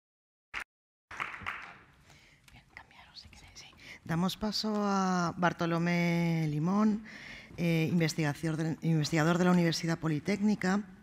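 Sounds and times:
faint whispering: 2.3 - 4.2.

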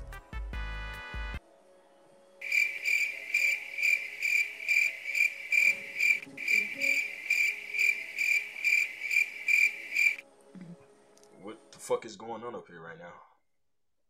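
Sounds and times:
crickets chirping: 2.4 - 10.2.

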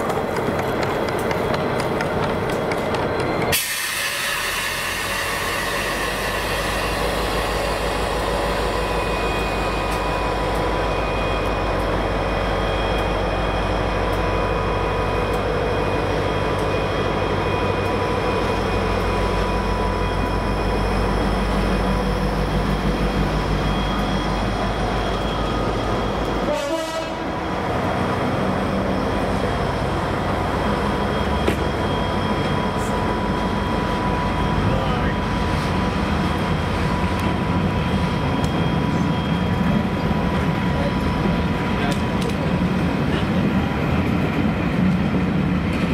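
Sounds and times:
diesel locomotive engine under power: 0.0 - 45.9
train coaches rolling by: 0.0 - 45.9.

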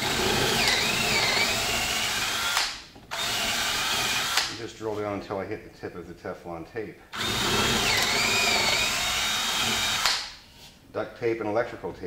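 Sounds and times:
drill bit cutting wood: 0.0 - 4.5, 7.2 - 10.2
power drill motor whine: 0.0 - 4.5, 7.2 - 10.2.

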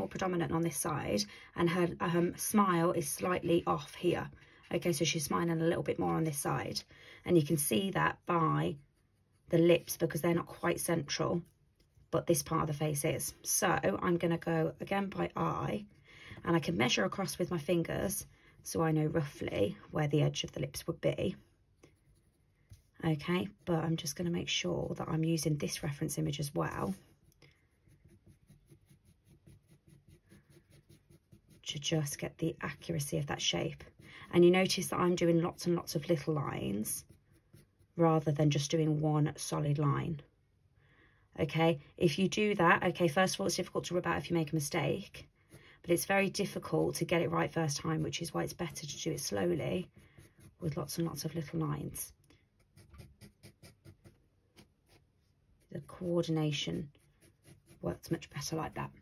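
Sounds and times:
pencil scratching on paper: 7.4 - 19.7, 20.5 - 38.9, 43.5 - 59.0.

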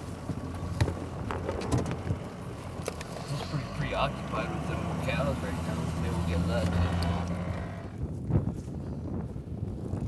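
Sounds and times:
truck engine and road noise: 0.0 - 10.0
wind on microphone: 6.7 - 10.0.

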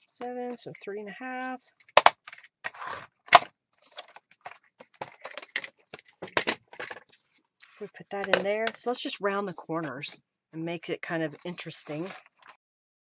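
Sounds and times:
paper being handled: 11.3 - 12.6.

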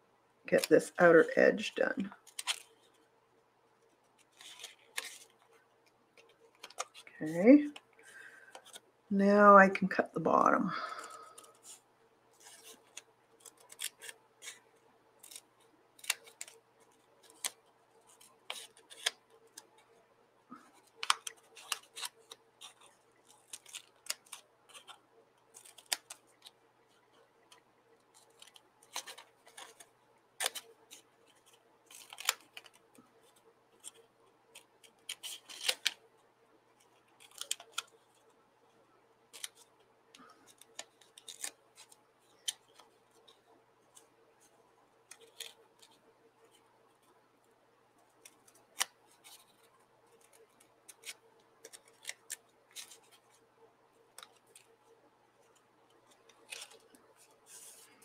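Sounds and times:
scissors snipping paper: 12.4 - 14.6, 15.2 - 15.4, 16.0 - 19.8, 20.7 - 26.5, 28.2 - 32.9, 33.8 - 36.0, 37.1 - 38.0, 40.4 - 44.1, 48.2 - 53.3.

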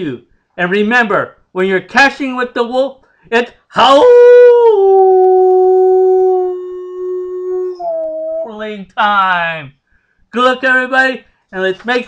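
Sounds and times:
man imitating wolf howl: 3.8 - 8.6.

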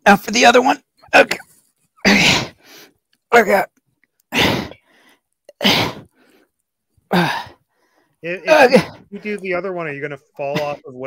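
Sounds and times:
man grunting with effort: 8.4 - 9.1.

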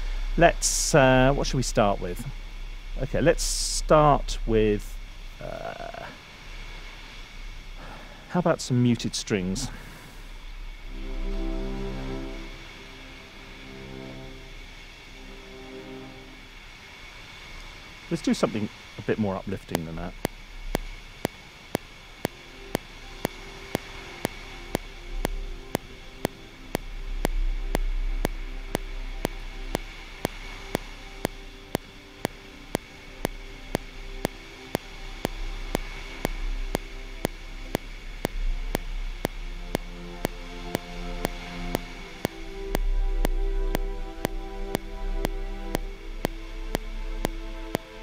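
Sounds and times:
constant hiss: 0.0 - 48.0
surf and wind rumble: 0.0 - 48.0
metronome clicking: 22.2 - 47.9.

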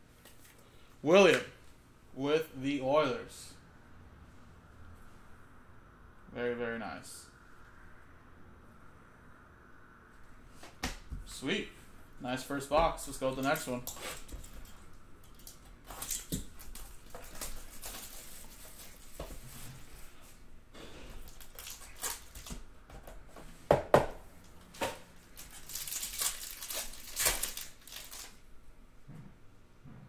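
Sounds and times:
crinkling and rustling: 13.0 - 20.4, 21.0 - 23.3, 24.4 - 28.5
plastic wrap tearing: 15.8 - 19.2, 21.2 - 22.6, 25.3 - 28.4
foil pack tearing open: 21.2 - 22.6, 25.4 - 28.4.

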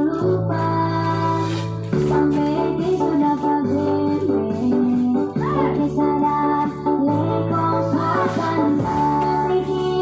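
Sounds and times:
person singing high: 5.3 - 6.2.

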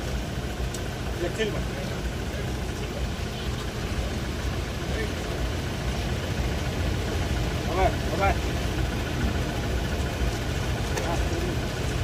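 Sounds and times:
steady low rumble: 0.0 - 12.0
crowd murmuring: 6.6 - 12.0.

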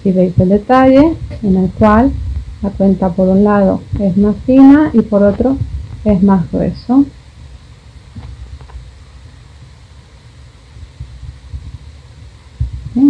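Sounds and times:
low background rumble: 0.0 - 13.0.

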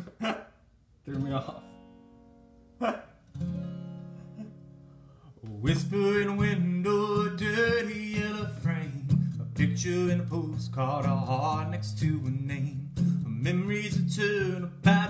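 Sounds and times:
acoustic guitar strumming: 1.1 - 15.0.

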